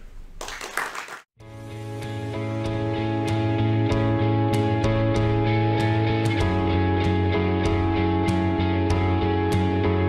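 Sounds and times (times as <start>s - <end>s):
audience applause: 0.4s - 1.3s
instrumental outro music: 1.4s - 10.0s.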